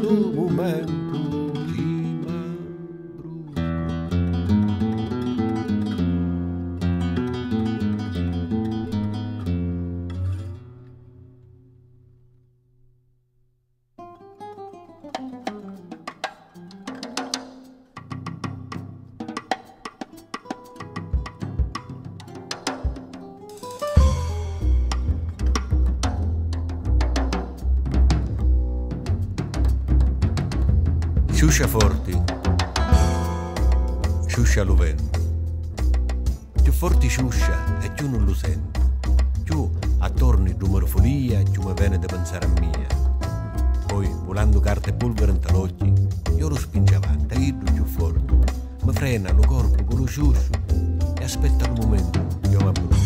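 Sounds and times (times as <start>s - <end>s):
plucked acoustic guitar: 0.0s - 11.8s, 14.0s - 53.0s
drums and hand percussion: 15.0s - 53.0s
low bass notes: 24.0s - 53.0s.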